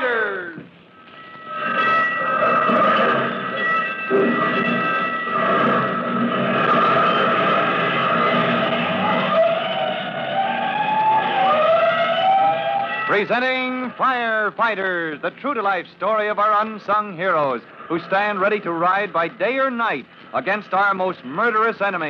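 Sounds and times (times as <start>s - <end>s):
fire engine sirens wailing: 0.0s - 14.8s
siren winding up: 1.0s - 13.7s.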